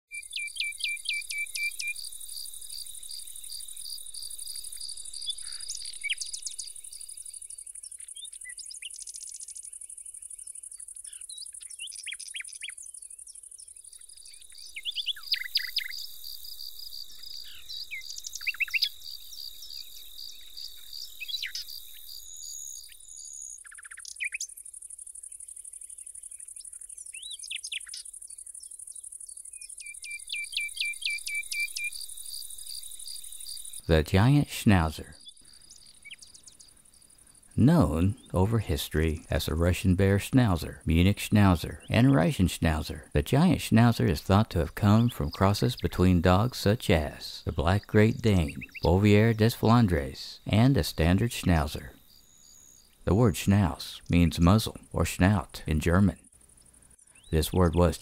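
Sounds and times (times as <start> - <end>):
bird trill: 0.1 - 38.4, 44.0 - 56.3
bird chirps and calls: 0.1 - 56.3, 56.9 - 58.0
insects chirping: 0.1 - 58.0.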